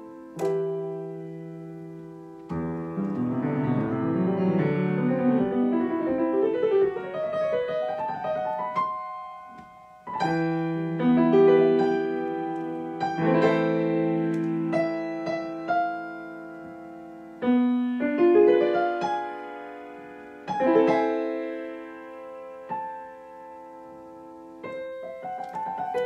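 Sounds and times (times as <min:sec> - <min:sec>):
grand piano: 0:00.0 - 0:26.0.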